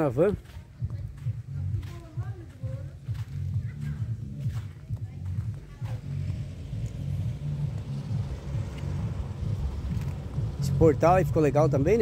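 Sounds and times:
footsteps on paving: 0.0s - 12.0s
low outdoor rumble: 0.3s - 12.0s.

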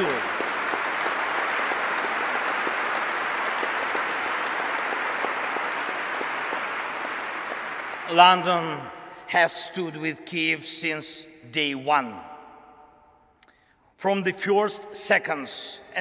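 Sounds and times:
audience applauding: 0.0s - 8.9s.

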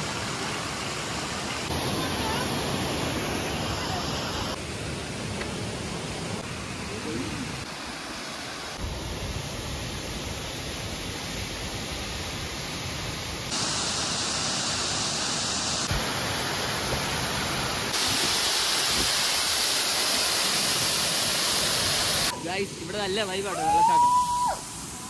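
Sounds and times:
waterfall rushing: 0.0s - 25.0s.

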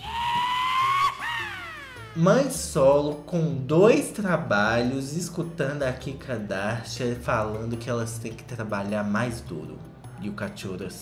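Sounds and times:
high voice-like squeal: 0.0s - 2.2s.

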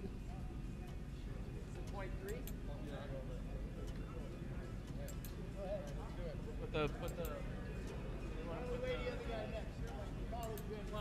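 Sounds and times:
indistinct background talk: 0.0s - 11.0s
steady low hum: 0.0s - 11.0s.

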